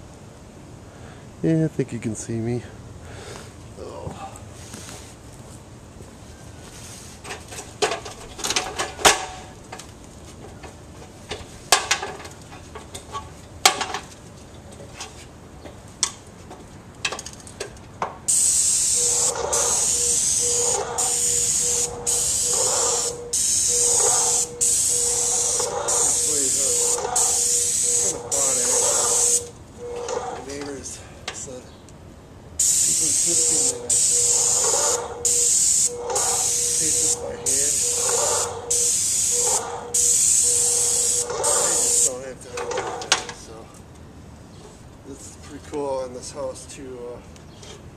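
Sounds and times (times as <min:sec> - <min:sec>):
paint spray gun hissing: 0:18.3 - 0:29.5, 0:32.6 - 0:42.2.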